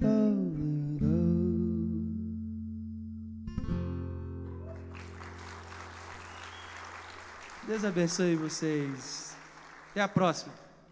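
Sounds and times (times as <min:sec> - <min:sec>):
audience applauding: 0:04.5 - 0:10.5.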